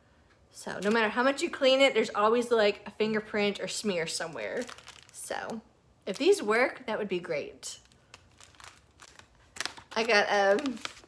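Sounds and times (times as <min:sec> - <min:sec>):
plastic packaging crinkling: 0:00.7 - 0:01.2, 0:03.6 - 0:06.5, 0:07.6 - 0:11.0.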